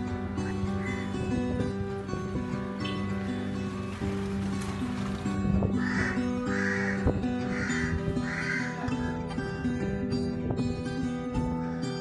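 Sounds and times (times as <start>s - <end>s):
acoustic guitar music: 0.0s - 12.0s
crow cawing: 0.6s - 1.2s, 5.8s - 9.1s.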